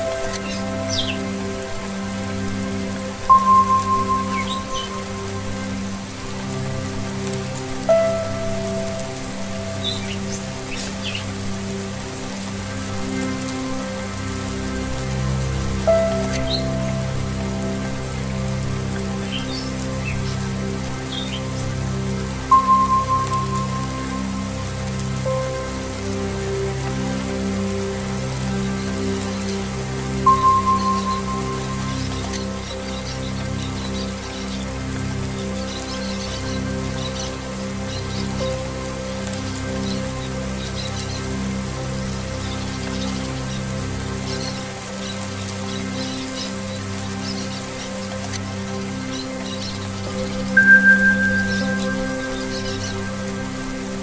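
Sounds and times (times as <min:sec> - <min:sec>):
low sustained drone: 0:00.0 - 0:54.0
steady rain: 0:00.0 - 0:54.0
bird chirps: 0:50.6 - 0:53.3
singing bowl tones: 0:50.6 - 0:53.9.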